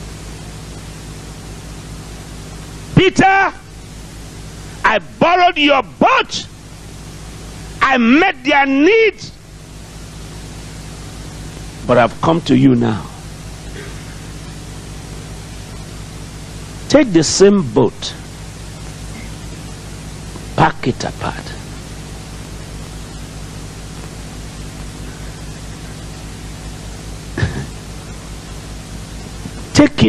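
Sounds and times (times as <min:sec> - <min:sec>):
low electrical hum: 0:00.0 - 0:30.0
recording hiss: 0:00.0 - 0:30.0.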